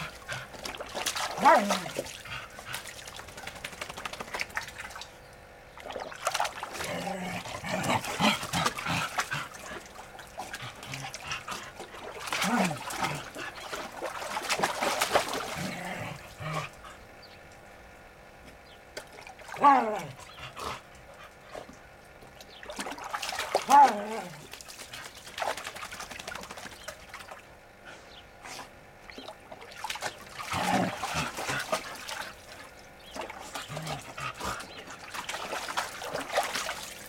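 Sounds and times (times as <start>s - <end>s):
water splashing in a plastic tub: 0.0s - 16.9s, 18.9s - 27.6s, 28.9s - 37.0s
dog making low vocal sounds: 6.7s - 13.7s.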